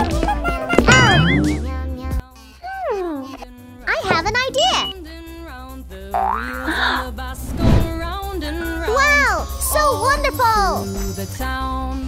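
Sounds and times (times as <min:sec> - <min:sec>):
children's background music: 0:00.0 - 0:12.0
low thud: 0:07.4 - 0:08.1.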